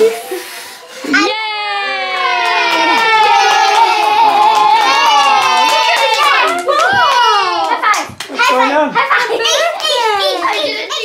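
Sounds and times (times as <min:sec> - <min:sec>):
hands clapping: 0:02.0 - 0:11.0.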